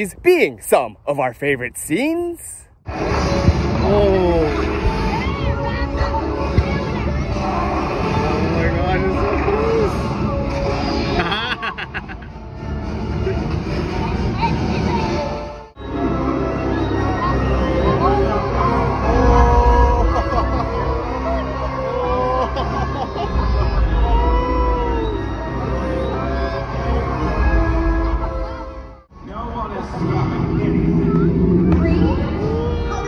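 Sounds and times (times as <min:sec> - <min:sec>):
music: 0:02.9 - 0:29.2
deep steady rumble: 0:28.4 - 0:33.0.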